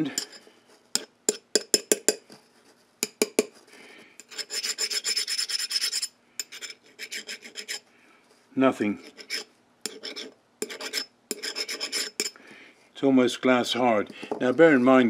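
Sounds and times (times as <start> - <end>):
file rasping on steel: 4.2 - 7.8, 9.0 - 12.4.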